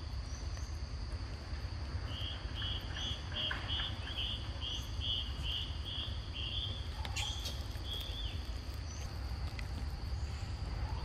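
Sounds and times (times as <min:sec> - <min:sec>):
high insect drone: 0:00.0 - 0:11.0
insect chirping: 0:00.0 - 0:11.0.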